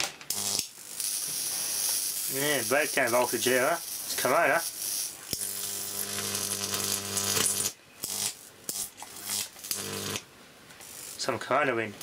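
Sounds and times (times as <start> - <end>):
electric arc buzzing and crackling: 0.0 - 12.0.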